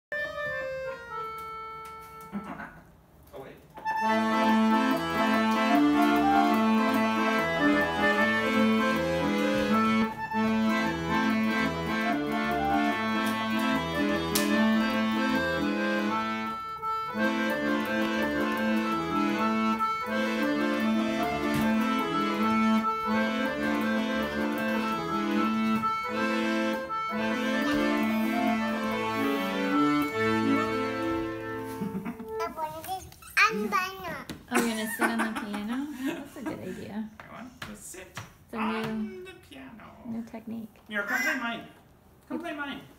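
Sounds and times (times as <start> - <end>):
piano accordion playing a tune: 0.1 - 2.8, 3.8 - 33.0.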